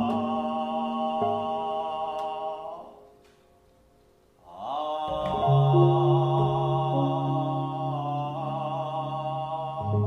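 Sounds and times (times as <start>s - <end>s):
background music: 0.0s - 10.0s
person chanting: 4.5s - 10.0s.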